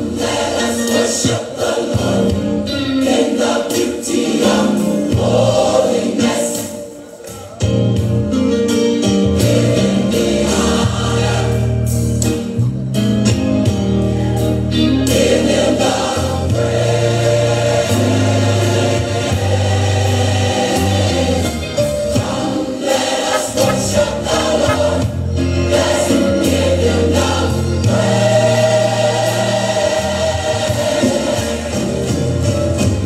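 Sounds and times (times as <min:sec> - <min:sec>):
choir singing gospel music: 0:00.0 - 0:12.6, 0:13.6 - 0:33.0
instrumental accompaniment: 0:23.0 - 0:26.7.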